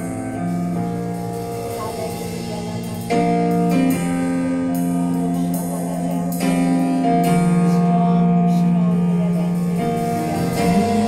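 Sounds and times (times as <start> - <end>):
electric keyboard chords: 0.0 - 11.0.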